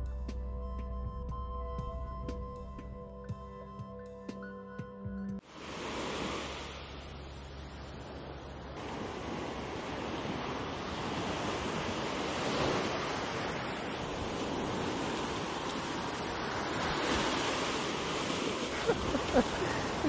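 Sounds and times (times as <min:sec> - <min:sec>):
ocean surf breaking on beach: 0:05.4 - 0:20.0.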